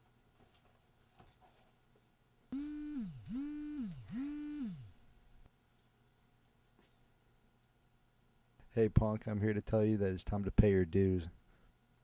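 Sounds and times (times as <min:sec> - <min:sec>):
mobile phone vibrating: 0:02.6 - 0:04.9.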